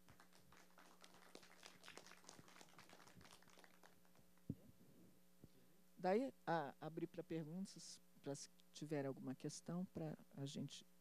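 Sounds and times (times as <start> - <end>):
faint applause: 0.0 - 4.2.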